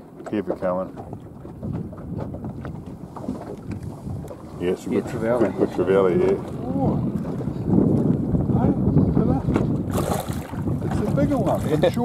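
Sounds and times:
boat and water rumble: 0:00.0 - 0:12.0
wind buffeting microphone: 0:00.0 - 0:12.0.

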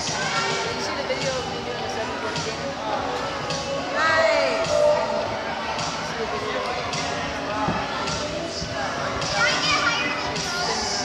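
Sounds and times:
background music: 0:00.0 - 0:11.0
children's voices and calls: 0:00.0 - 0:11.0.

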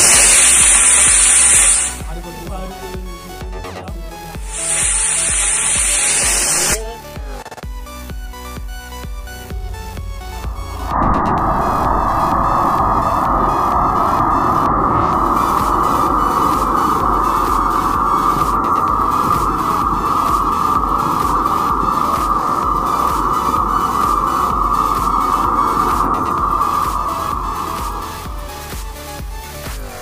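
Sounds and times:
firework rocket hissing: 0:00.0 - 0:02.1, 0:04.4 - 0:06.9, 0:08.8 - 0:29.6
electronic music with beat: 0:00.0 - 0:30.0.

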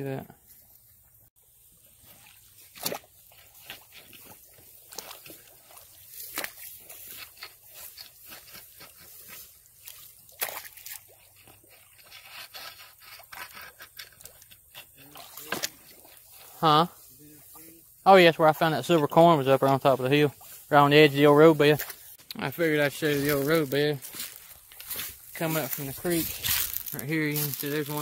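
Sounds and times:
water sloshing and splashing: 0:00.5 - 0:28.0.

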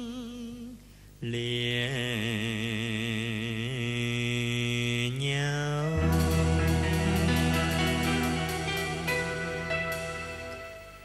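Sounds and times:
man singing with vibrato: 0:00.0 - 0:10.3.

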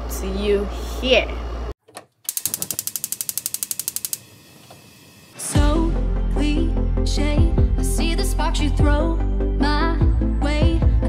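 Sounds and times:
gas stove igniter clicking: 0:02.3 - 0:04.9
gas burner hissing: 0:02.3 - 0:05.4.

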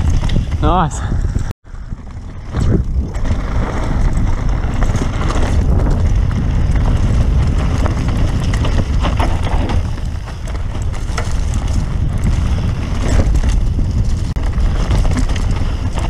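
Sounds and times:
bike rattling clicks and knocks: 0:00.0 - 0:16.0
bike tyre noise on dirt: 0:00.0 - 0:16.0
wind rumble on microphone: 0:00.0 - 0:16.0.

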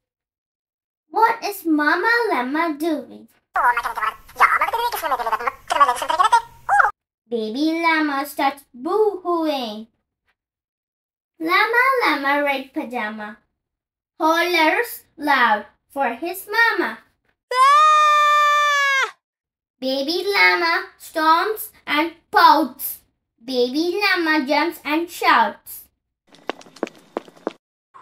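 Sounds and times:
child making pitch-bending sounds: 0:03.6 - 0:06.9
child hollering: 0:17.5 - 0:19.2.

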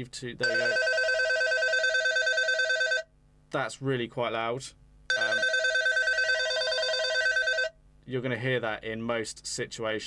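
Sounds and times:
trilling electronic phone ring: 0:00.4 - 0:03.1, 0:05.1 - 0:07.7.

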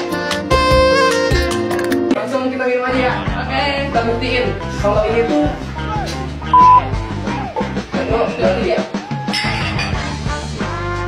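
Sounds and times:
rock music with guitar: 0:06.0 - 0:07.9
high electronic beep: 0:06.6 - 0:06.8.

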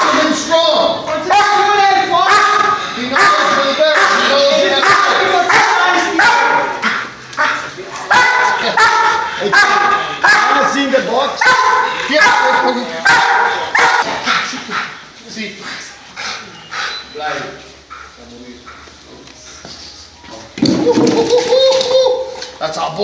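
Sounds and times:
dog barking: 0:02.2 - 0:10.8, 0:11.4 - 0:14.3.

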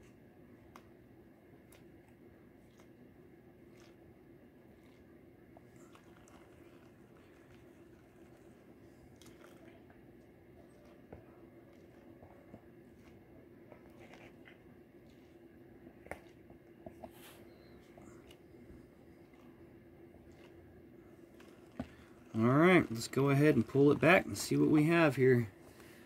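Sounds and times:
steady low hum: 0:00.0 - 0:26.0
gravel grating in a plastic pan: 0:21.3 - 0:25.5.

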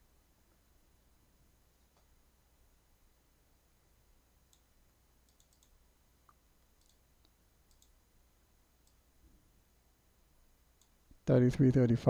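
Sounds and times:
computer mouse clicks: 0:04.5 - 0:04.7, 0:05.3 - 0:08.0, 0:08.8 - 0:09.0.

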